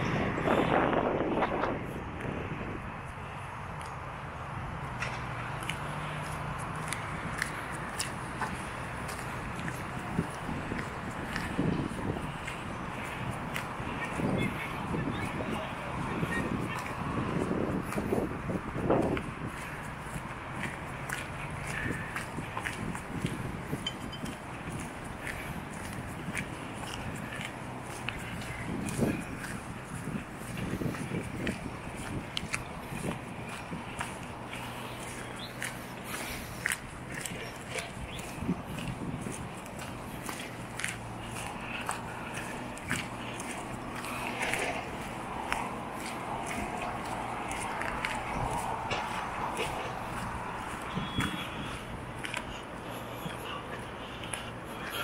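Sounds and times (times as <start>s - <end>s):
footsteps on paved path: 0.0s - 55.0s.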